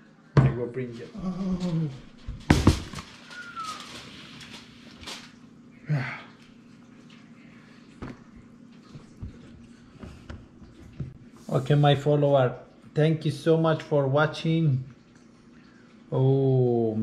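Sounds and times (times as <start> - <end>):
foil rustling: 2.2 - 5.4.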